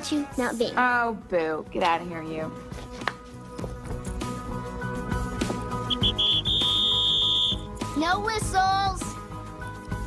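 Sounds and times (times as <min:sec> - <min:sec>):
background music: 0:00.0 - 0:10.0
sports whistle blowing: 0:05.8 - 0:07.7.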